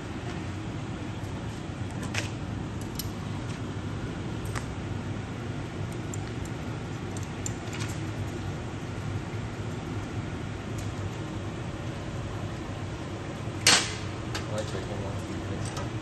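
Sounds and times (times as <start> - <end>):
furnaces and burners roaring: 0.0 - 16.0.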